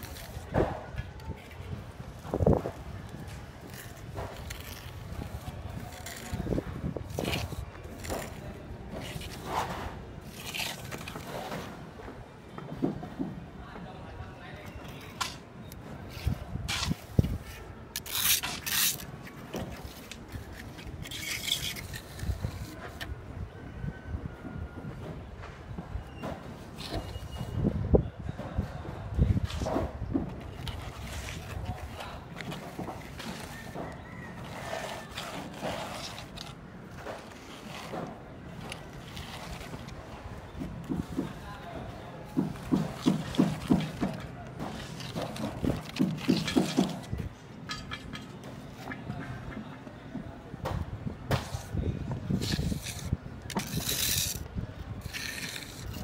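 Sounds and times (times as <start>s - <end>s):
trowel scraping wet cement: 0.0s - 11.8s, 14.9s - 23.1s, 26.6s - 27.6s, 29.4s - 41.4s, 42.3s - 49.0s, 51.3s - 56.0s.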